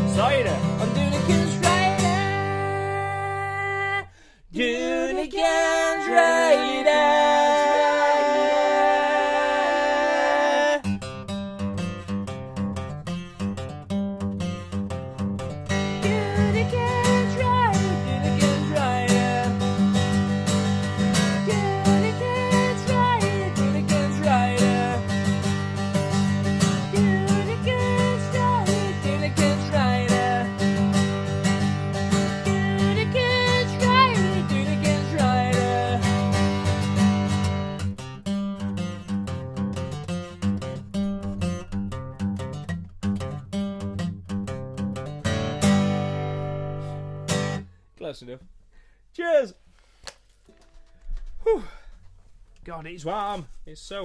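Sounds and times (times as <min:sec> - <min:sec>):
acoustic guitar strumming: 0:00.0 - 0:03.7, 0:05.4 - 0:47.7.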